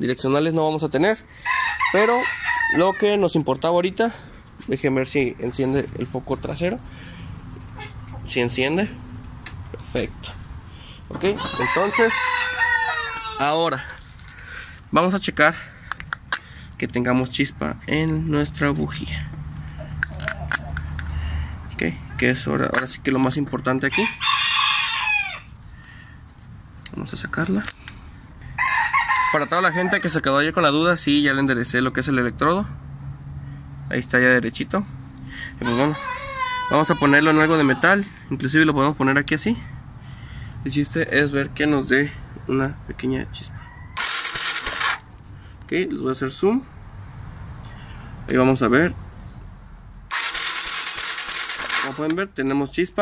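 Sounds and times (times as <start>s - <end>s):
rooster crowing: 1.4s - 3.3s, 11.2s - 13.9s, 23.8s - 25.5s, 28.5s - 30.2s, 35.6s - 38.1s, 43.5s - 44.8s
electric starter cranking engine: 44.0s - 45.0s, 50.1s - 52.2s.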